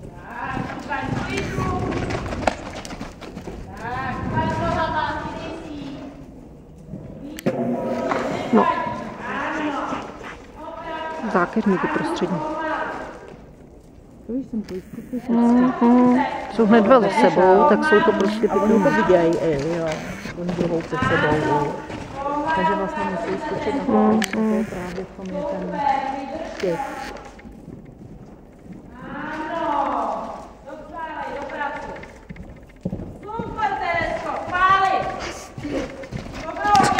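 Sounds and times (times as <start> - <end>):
horse hooves on sand: 0.0 - 36.9
person speaking: 14.3 - 27.4
people calling out: 14.6 - 27.4.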